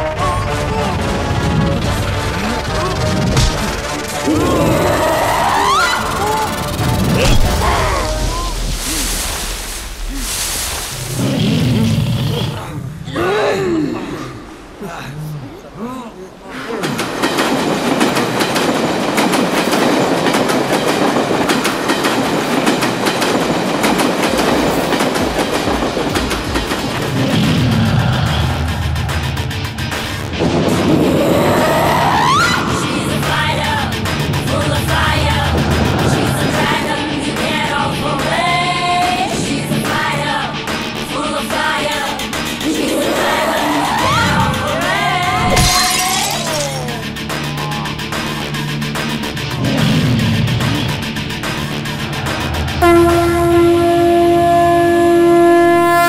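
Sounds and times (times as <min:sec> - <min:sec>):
dense soundtrack noise with clattering beat: 0:00.0 - 0:08.0, 0:17.3 - 0:45.4, 0:46.9 - 0:52.8
film score music: 0:00.0 - 0:45.6, 0:46.4 - 0:55.7
low rumble: 0:06.1 - 0:13.1
glass bottle smashing: 0:45.5 - 0:47.0.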